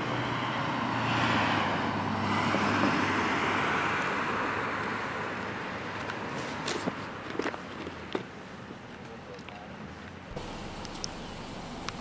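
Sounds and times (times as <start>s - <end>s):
footsteps on pavement: 4.0s - 11.2s.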